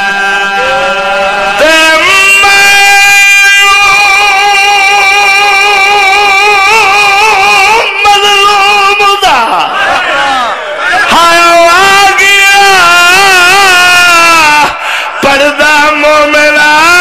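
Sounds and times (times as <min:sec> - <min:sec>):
man chanting into a microphone: 0:00.0 - 0:09.8, 0:10.9 - 0:17.0.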